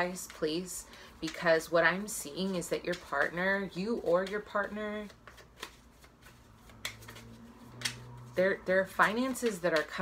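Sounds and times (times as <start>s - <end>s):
cards being shuffled: 2.4s - 10.0s.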